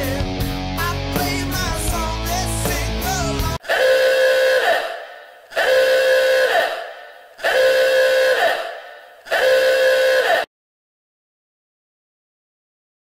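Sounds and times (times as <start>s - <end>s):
horn-like blast: 3.6s - 10.5s.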